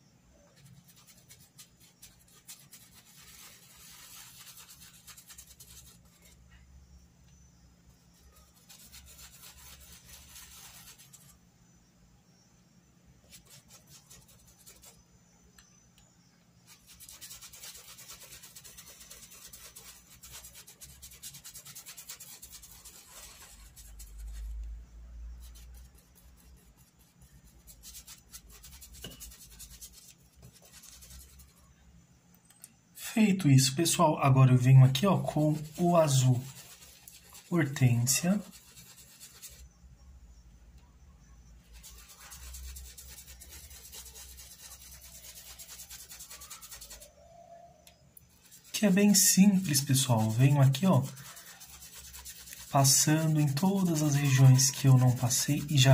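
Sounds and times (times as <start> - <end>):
paintbrush scrubbing cloth: 0.4 - 6.5, 8.0 - 11.4, 13.2 - 15.0, 16.6 - 31.8, 33.0 - 39.8, 41.6 - 55.9.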